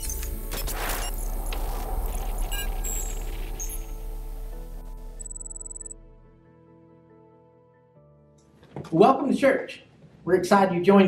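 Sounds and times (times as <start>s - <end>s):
digital glitch blips and beeps: 0.0s - 4.4s, 5.2s - 6.0s
low rumble: 0.0s - 6.4s
rushing wash of noise: 0.6s - 5.2s.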